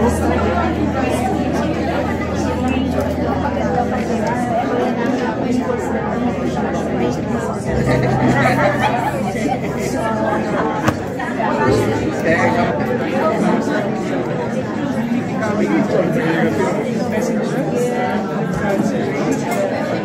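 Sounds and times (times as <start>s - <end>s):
many people talking at once: 0.0s - 20.0s.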